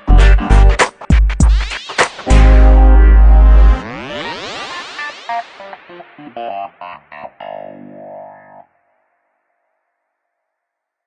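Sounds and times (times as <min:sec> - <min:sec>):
guitar notes with effects: 0:02.3 - 0:09.3.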